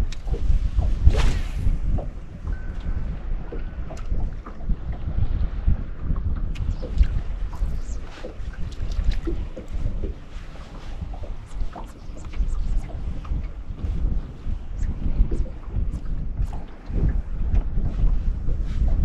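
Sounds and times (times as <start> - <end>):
water slaps: 0.0 - 3.0
wind buffeting microphone: 0.0 - 19.0.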